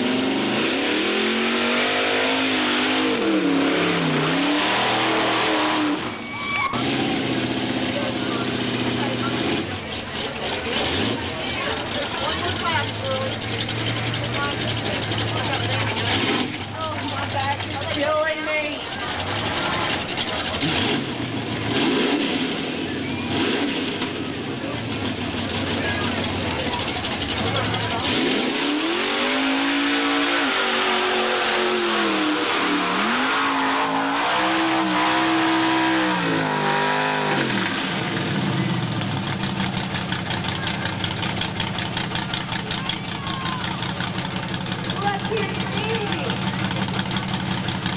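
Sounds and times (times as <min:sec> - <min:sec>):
truck engine running under load: 0:00.0 - 0:47.9
people shouting: 0:42.7 - 0:44.0.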